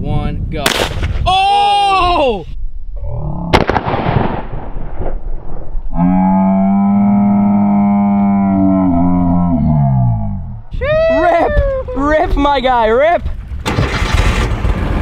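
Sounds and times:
shotgun blast: 0.6s - 1.2s, 3.5s - 5.6s.

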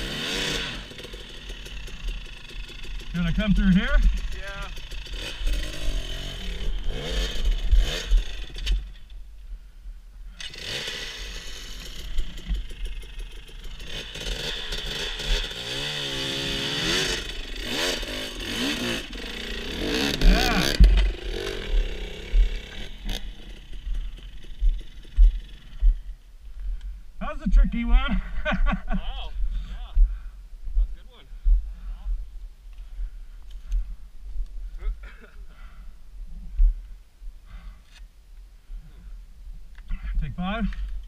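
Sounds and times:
dirt bike engine revving: 0.0s - 9.0s, 10.4s - 26.2s.

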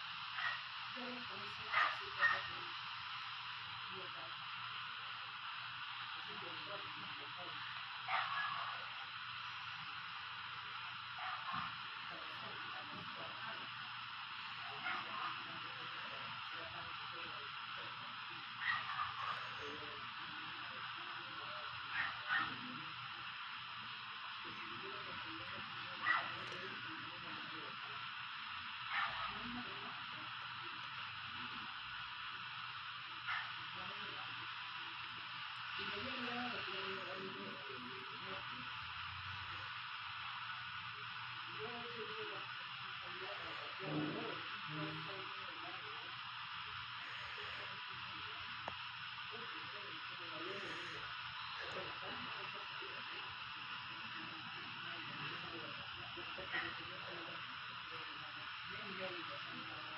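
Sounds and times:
faint muffled voices: 0.0s - 59.9s
steady hiss: 0.0s - 59.9s.

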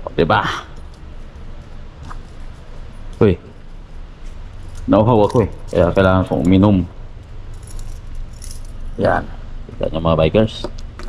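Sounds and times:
steady low hum: 0.0s - 11.0s
keys jingling: 0.7s - 3.6s, 4.2s - 6.6s, 7.4s - 9.0s.

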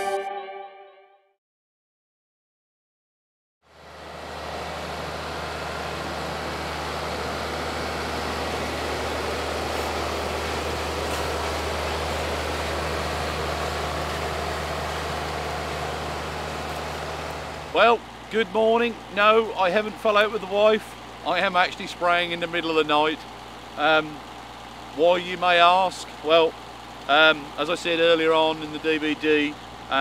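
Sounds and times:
crop sprayer engine running: 3.7s - 30.0s.

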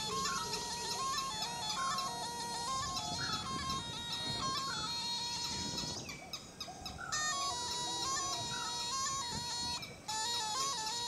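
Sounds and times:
reedy pipe melody over drone: 0.0s - 11.0s.

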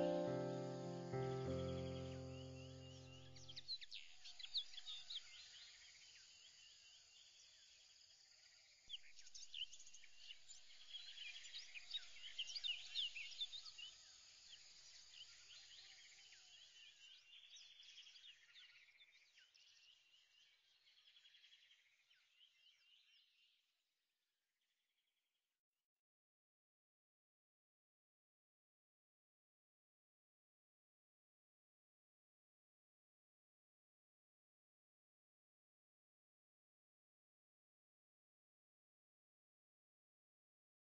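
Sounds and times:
background music: 0.0s - 3.2s
faint birds chirping: 0.0s - 8.1s.

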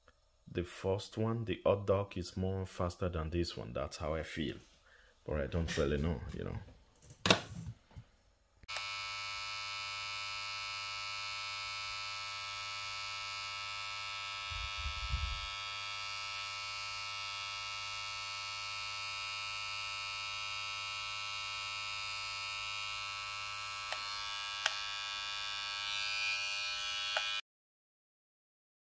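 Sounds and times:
hair trimmer buzzing: 8.6s - 27.4s.

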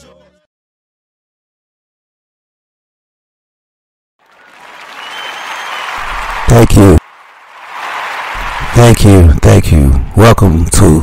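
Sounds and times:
crowd applause: 4.2s - 10.2s
faint whistle: 4.4s - 6.3s.

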